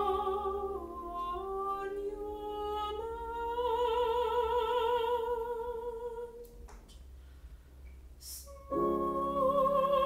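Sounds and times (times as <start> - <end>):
soprano singing with vibrato: 0.0 - 6.5, 8.2 - 10.0
low steady hum: 0.0 - 10.0.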